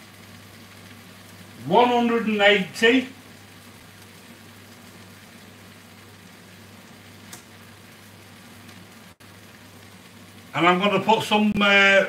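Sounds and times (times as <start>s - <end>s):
faint hiss: 0.0s - 12.0s
faint click: 7.3s - 7.5s.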